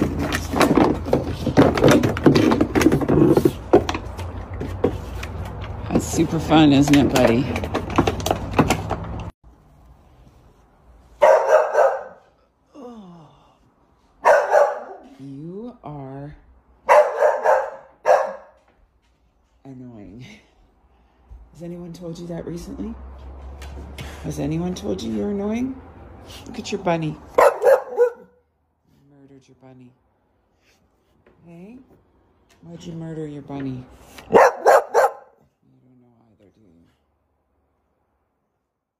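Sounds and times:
dog barking: 11.2s - 12.3s, 14.2s - 15.1s, 16.8s - 18.6s, 27.3s - 28.4s, 34.3s - 35.4s.

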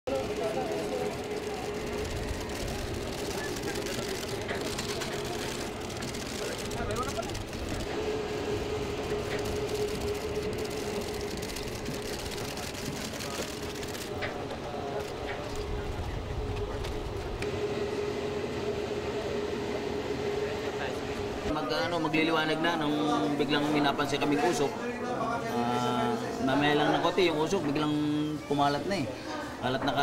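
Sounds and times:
steady mechanical hum: 0.1s - 30.0s.

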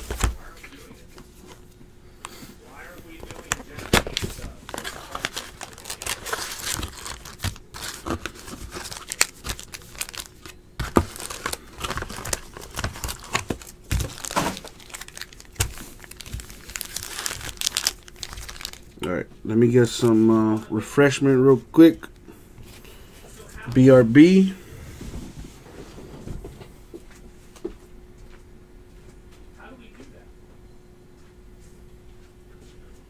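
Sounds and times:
plastic wrapping tearing and crinkling: 3.3s - 19.0s.

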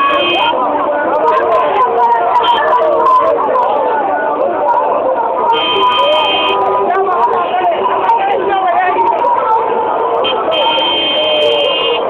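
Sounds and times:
car horn: 0.0s - 0.6s, 5.5s - 6.7s, 10.2s - 12.0s
voices: 0.0s - 12.0s.

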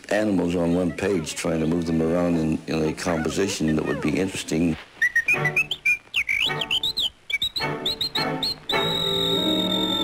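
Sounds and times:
whistled bird chirps: 5.0s - 10.0s
light orchestral music: 7.6s - 10.0s.

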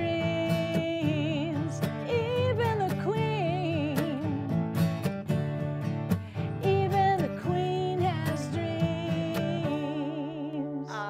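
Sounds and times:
woman singing: 0.0s - 4.6s, 6.4s - 11.0s
acoustic guitar strumming: 0.0s - 11.0s.

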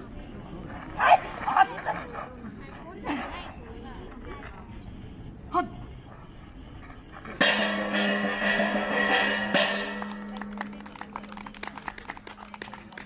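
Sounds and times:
ringing gong-like strike: 7.4s - 10.8s.

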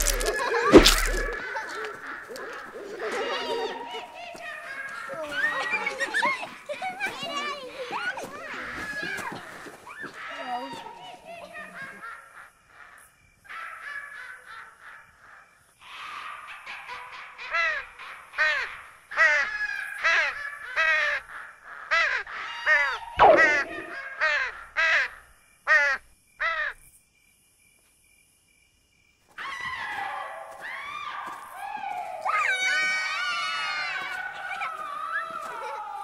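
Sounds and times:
crows cawing: 0.0s - 3.5s, 11.8s - 16.5s, 17.5s - 26.8s.

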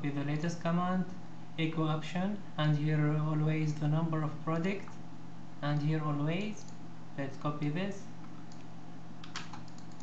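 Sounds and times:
steady low hum: 0.0s - 10.0s
keyboard and mouse clicks: 8.2s - 10.0s.

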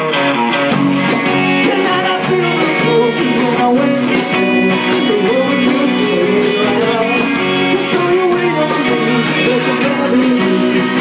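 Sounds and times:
drums: 0.0s - 11.0s
electric bass: 0.0s - 11.0s
electric guitars: 0.0s - 11.0s
man singing into microphone: 1.6s - 11.0s.

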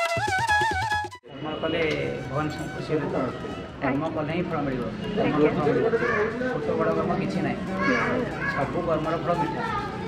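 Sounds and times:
man talking: 1.3s - 9.7s.

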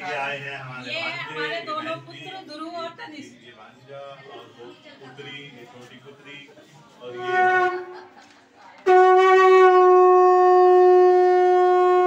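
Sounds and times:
conch shell blown: 7.1s - 8.0s, 8.8s - 12.0s.

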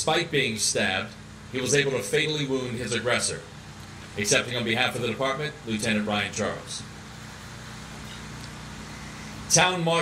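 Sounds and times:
low background hum and hiss: 0.0s - 10.0s.

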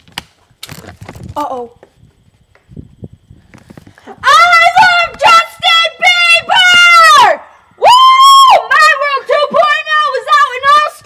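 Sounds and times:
girl squealing and yelping: 4.0s - 11.0s.

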